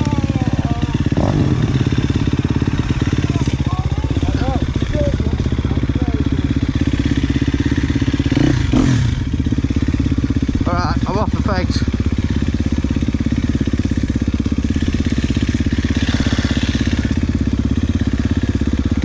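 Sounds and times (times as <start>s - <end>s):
dirt bike engine at low revs: 0.0s - 19.0s.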